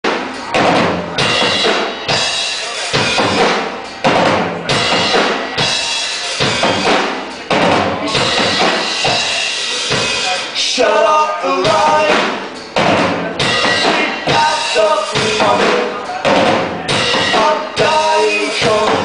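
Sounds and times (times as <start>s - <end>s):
bass drum and snare hits: 0.0s - 1.9s, 3.0s - 5.5s, 6.4s - 10.0s, 11.7s - 14.6s, 15.2s - 17.9s
live band playing loudly: 0.0s - 19.0s.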